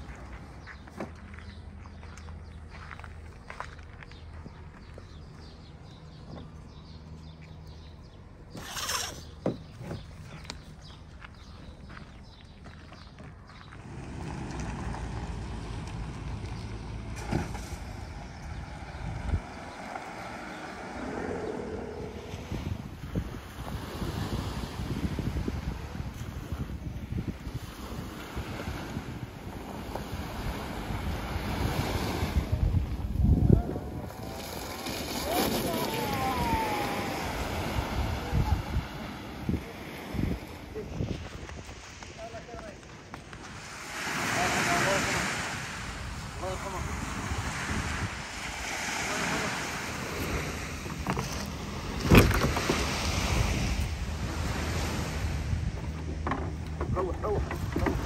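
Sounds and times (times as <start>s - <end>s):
wind buffeting microphone: 10.8s - 58.0s.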